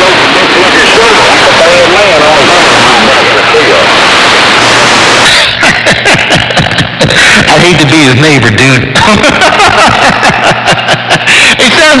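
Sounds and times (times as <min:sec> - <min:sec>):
garbled radio transmission: 0:00.0 - 0:12.0
radio static hiss: 0:00.0 - 0:12.0.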